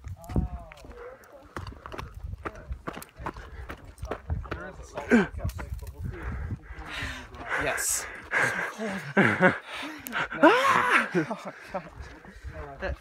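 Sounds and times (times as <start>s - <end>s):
footsteps on gravel: 0.0s - 6.5s
people's voices: 0.2s - 13.0s.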